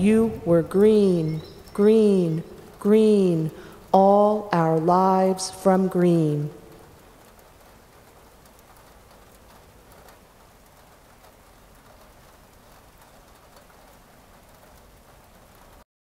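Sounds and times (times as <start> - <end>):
faint background hiss: 0.0 - 15.8
soft ticks: 6.6 - 14.9.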